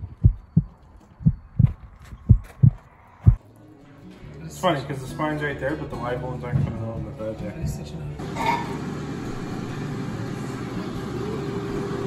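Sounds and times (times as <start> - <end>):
heartbeat thumps: 0.0 - 3.4.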